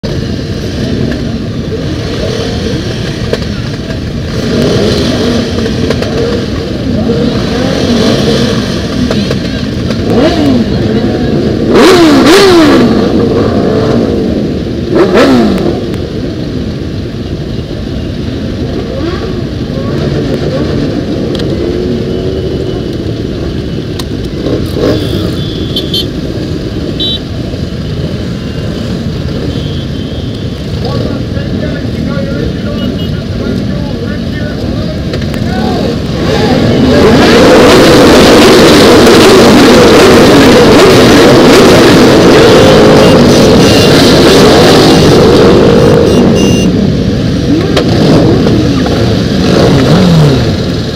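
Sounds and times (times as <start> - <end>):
motorcycles revving: 0.0 - 50.9.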